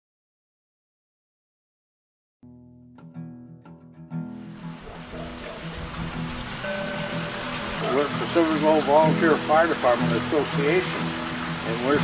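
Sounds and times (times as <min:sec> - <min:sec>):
soft acoustic guitar music: 0:02.4 - 0:12.0
steady rushing noise: 0:04.6 - 0:08.2
man's voice: 0:07.8 - 0:11.0, 0:11.6 - 0:12.0.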